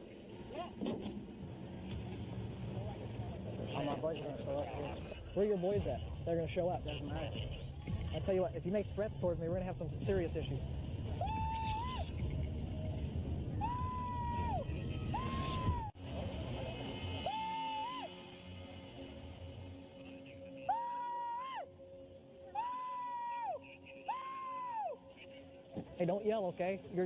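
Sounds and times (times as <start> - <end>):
man yelling high held shouts: 22.6 - 25.0.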